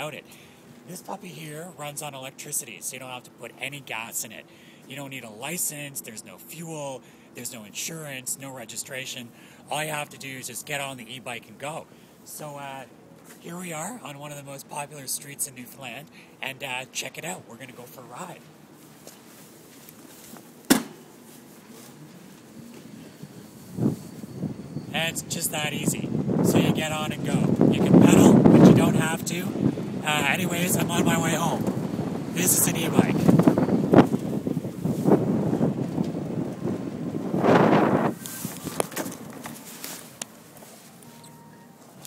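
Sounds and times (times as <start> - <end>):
low steady background noise: 0.0 - 42.0
handling rustle: 18.8 - 22.9, 38.2 - 42.0
sharp knock: 20.7 - 21.0
wind noise on microphone: 22.5 - 39.7.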